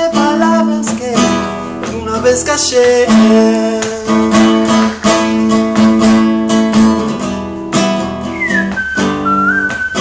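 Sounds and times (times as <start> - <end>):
acoustic guitar strumming: 0.0 - 10.0
whistled melody: 8.2 - 10.0.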